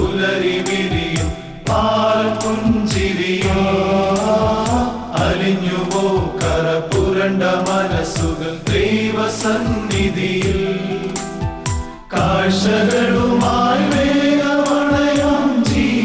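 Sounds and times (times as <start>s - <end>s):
male choir singing: 0.0s - 11.3s, 12.1s - 16.0s
orchestrated keyboard backing: 0.0s - 16.0s
steady drum beat: 0.0s - 16.0s.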